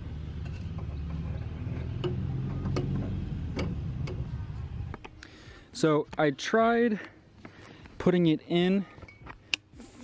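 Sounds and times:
low steady rumble: 0.0 - 5.6
pipe clicking and knocking: 0.5 - 4.3.

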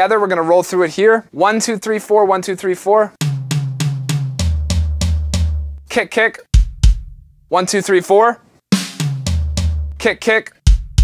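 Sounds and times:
electronic floor tom hits: 3.2 - 5.8, 6.6 - 7.2, 8.8 - 10.0
electronic rack tom hits: 3.2 - 5.8, 6.6 - 7.2.

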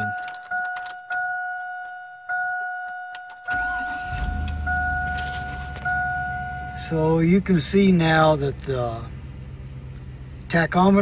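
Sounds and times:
dashboard warning chime: 0.0 - 7.6
engine cranking and starting: 3.4 - 5.9
engine idling: 3.5 - 11.0.

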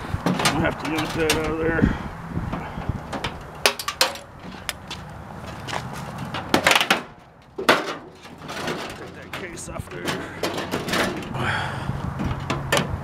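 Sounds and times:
metal parts clanking and rattling: 0.2 - 1.6, 3.1 - 4.9, 6.1 - 11.4.

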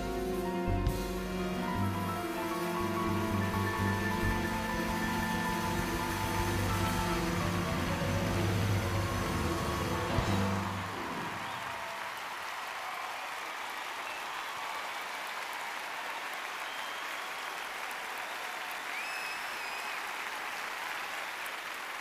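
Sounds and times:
live piano-led music: 0.0 - 11.7
audience applauding: 0.0 - 22.0.

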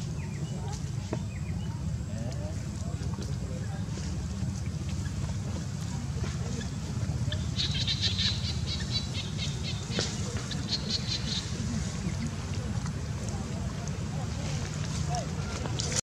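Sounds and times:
steady low rumble: 0.0 - 16.0
bird twittering: 6.6 - 11.5.

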